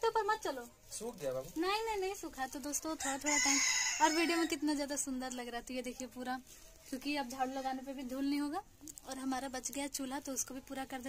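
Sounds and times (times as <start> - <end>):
rooster crowing: 3.0 - 4.6.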